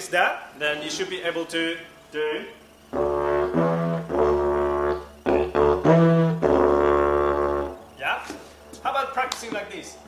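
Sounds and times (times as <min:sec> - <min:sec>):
didgeridoo drone and toot: 0:02.9 - 0:08.0.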